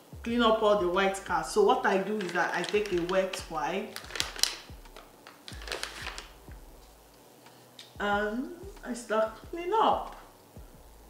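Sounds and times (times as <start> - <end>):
plastic pack crinkling: 1.7 - 6.5.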